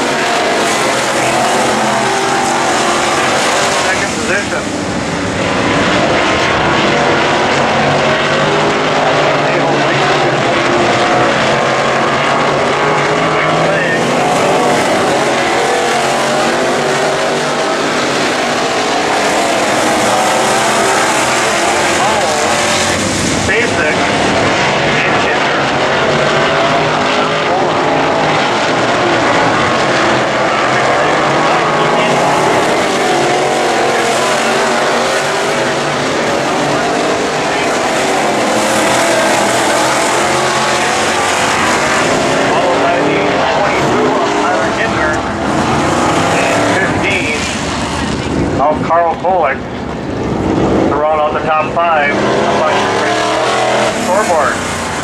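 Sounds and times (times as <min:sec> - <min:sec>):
race car engines roaring: 0:00.0 - 0:55.0.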